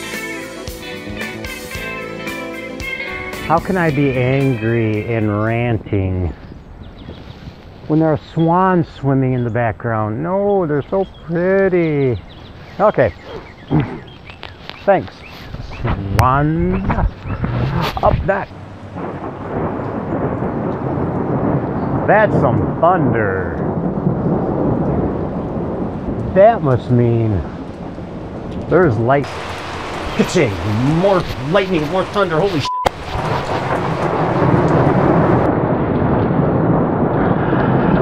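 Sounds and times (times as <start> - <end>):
heavy rain: 0.0 - 38.0
thunder rumbling: 3.0 - 38.0.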